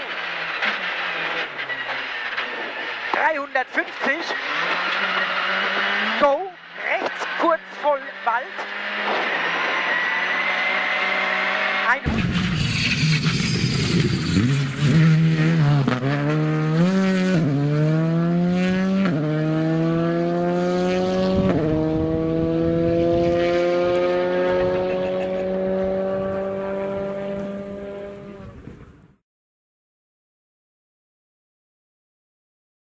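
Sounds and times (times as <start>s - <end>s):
rally car engine accelerating: 0.0s - 28.8s.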